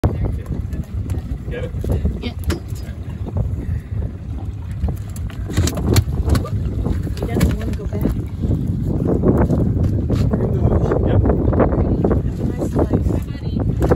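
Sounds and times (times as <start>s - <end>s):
wind buffeting microphone: 0.0s - 13.9s.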